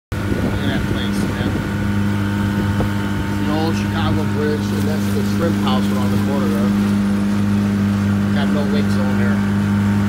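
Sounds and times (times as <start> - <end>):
motorboat engine droning: 0.1 - 10.0.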